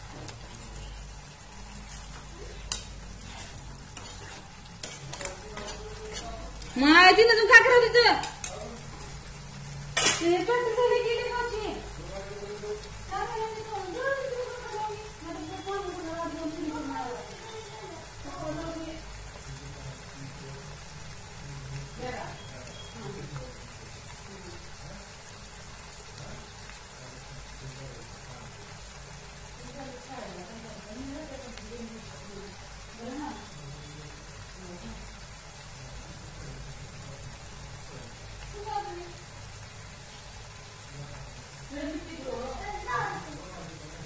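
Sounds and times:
spatula stirring vegetables in pan: 0.0 - 41.6
steady sizzle: 0.0 - 44.0
spatula scraping pan: 1.7 - 6.8.

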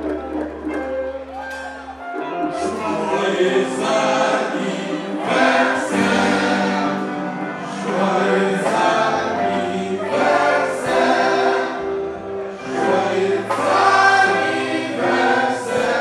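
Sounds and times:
musical backing: 0.0 - 16.0
voices singing in chorus: 2.4 - 16.0.

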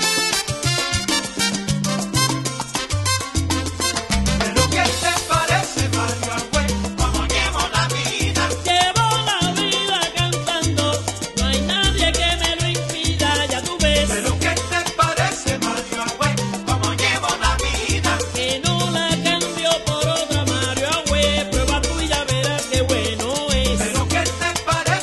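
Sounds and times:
stepping bass line: 0.0 - 10.9, 11.5 - 19.4, 21.2 - 25.0
dense rhythmic percussion: 0.0 - 25.0.

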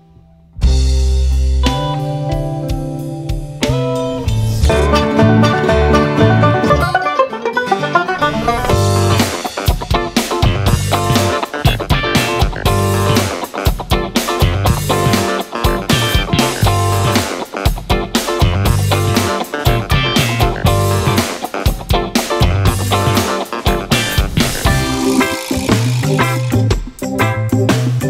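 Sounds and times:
guitar: 0.0 - 28.0
heavy bass line: 3.4 - 7.2, 8.3 - 17.8, 18.4 - 21.4, 22.4 - 28.0
drum hits: 8.7 - 27.1.

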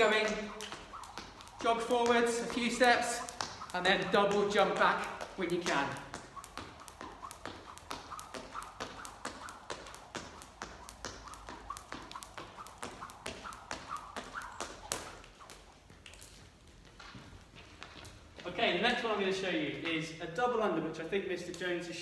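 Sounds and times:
skipping rope tapping hard floor: 0.0 - 18.5.

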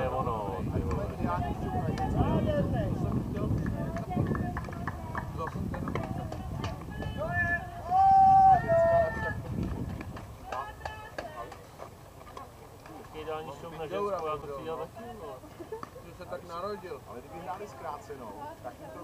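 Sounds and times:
people shouting: 6.3 - 9.5
loud drawn-out shout: 6.9 - 9.5.

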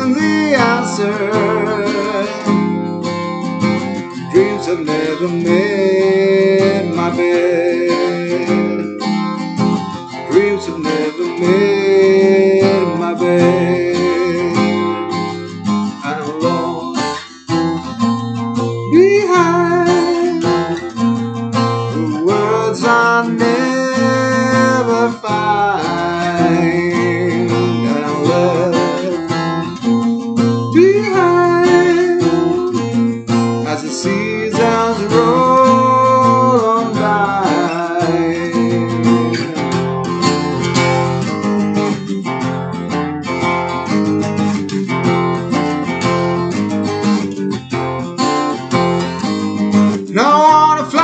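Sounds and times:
man singing: 0.0 - 3.0, 4.0 - 17.6, 18.6 - 41.2, 49.2 - 51.0
acoustic guitar strumming: 0.0 - 51.0.

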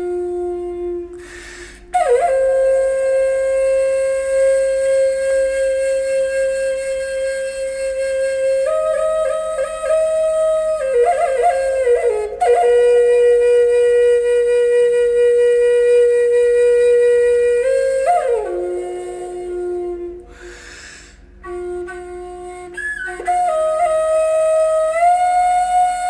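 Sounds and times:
flute melody: 0.0 - 20.7, 21.4 - 26.0.

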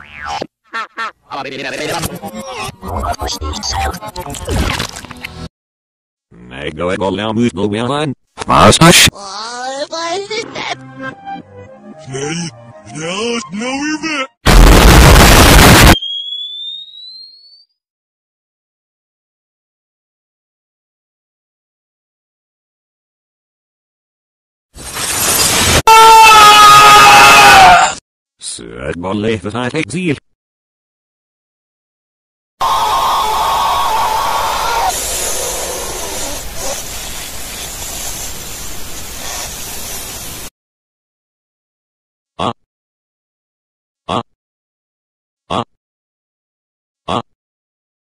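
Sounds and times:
loud explosion: 14.5 - 16.0
thin high-pitched tone rising: 16.0 - 17.6
harsh distorted hissing: 34.2 - 40.5.

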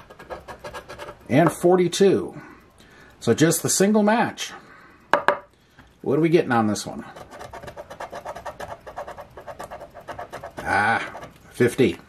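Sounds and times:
coin scratching lottery ticket: 0.0 - 1.4, 7.1 - 11.4.

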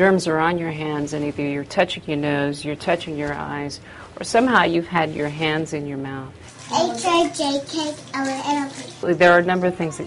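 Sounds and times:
tap water running into sink: 6.4 - 9.7
child's voice: 6.7 - 9.0.

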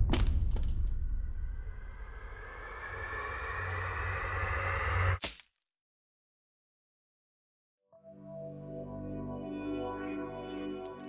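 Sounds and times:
noisy rising swell: 1.7 - 5.2.

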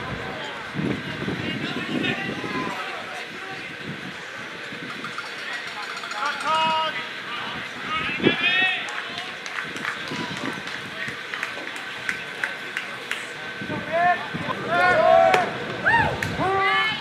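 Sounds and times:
people shouting and chattering: 0.0 - 17.0
long held shout: 14.0 - 17.0.

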